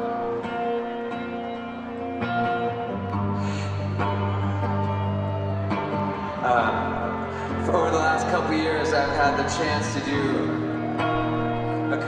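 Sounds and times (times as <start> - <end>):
electric guitar ringing chords: 0.0 - 12.0.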